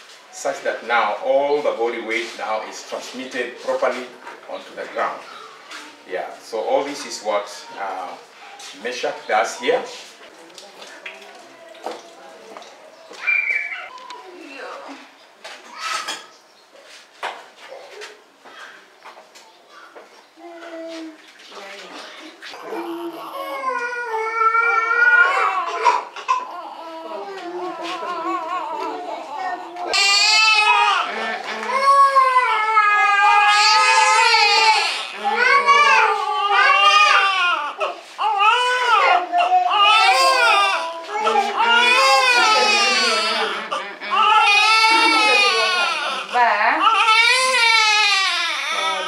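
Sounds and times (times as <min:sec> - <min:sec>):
infant crying loudly: 0:22.6 - 0:49.0.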